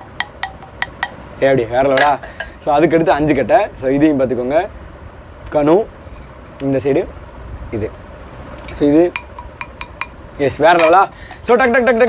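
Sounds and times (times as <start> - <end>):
man speaking: 1.4 - 4.7, 10.4 - 12.0.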